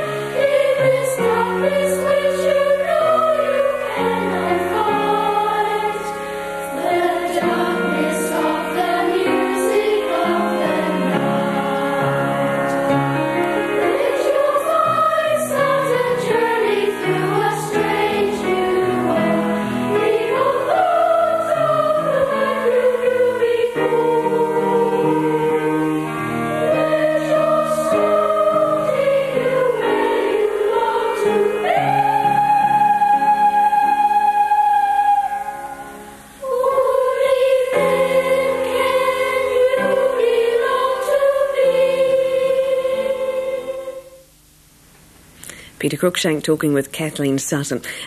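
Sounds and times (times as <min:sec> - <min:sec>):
boys' choir singing: 0:00.0 - 0:44.2.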